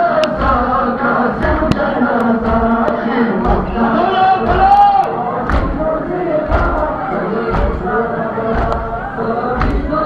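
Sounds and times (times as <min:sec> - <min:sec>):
group chanting in unison: 0:00.0 - 0:10.0
chest-beating thuds: 0:00.3 - 0:06.9, 0:07.5 - 0:09.0.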